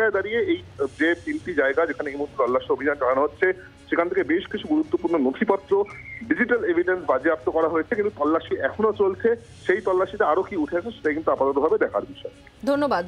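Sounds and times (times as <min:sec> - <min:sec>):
man talking over telephone: 0:00.0 - 0:12.3
low background music: 0:00.0 - 0:13.0.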